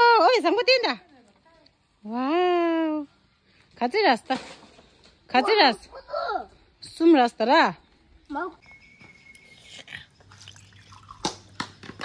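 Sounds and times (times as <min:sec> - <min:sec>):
liquid trickling into a glass: 0:10.2 - 0:11.3.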